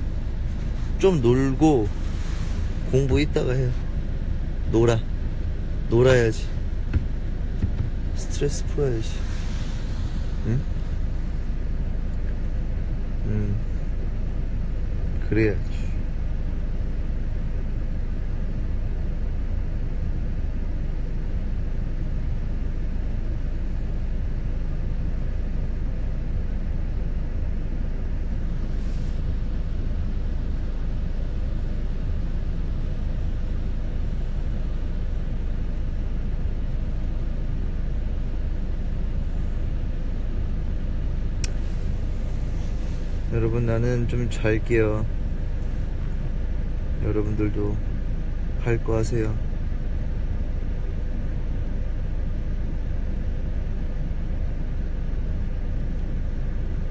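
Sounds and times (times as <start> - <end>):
car cabin rumble: 0.0 - 15.8
faint click: 41.4 - 41.6.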